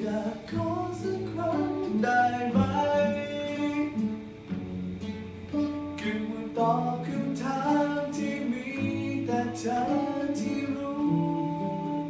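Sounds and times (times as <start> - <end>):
person singing: 0.0 - 4.3, 6.0 - 12.0
fingerstyle acoustic guitar: 0.0 - 12.0.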